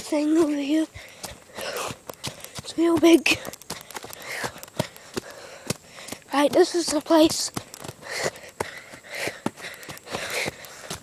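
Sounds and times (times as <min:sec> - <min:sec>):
footsteps on dirt trail: 0:00.0 - 0:11.0
person breathing: 0:00.8 - 0:06.3, 0:07.6 - 0:11.0.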